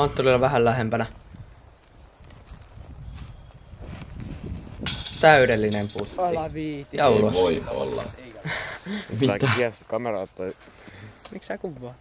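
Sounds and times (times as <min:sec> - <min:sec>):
low outdoor background noise: 0:00.0 - 0:12.0
disc striking metal chains: 0:04.8 - 0:06.3.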